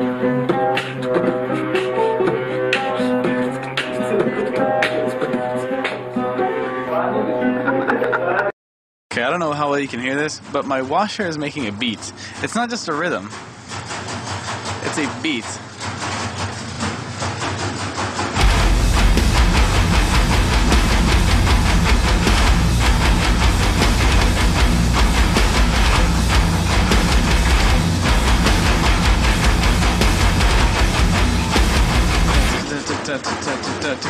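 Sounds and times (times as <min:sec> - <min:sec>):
loud song with heavy bass: 0:00.0 - 0:07.5, 0:18.4 - 0:33.9
washing machine knocking: 0:09.5 - 0:34.0.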